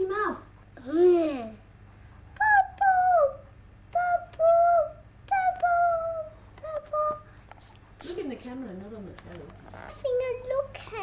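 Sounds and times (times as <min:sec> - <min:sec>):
child hooting coo-coo calls: 0:02.4 - 0:07.3.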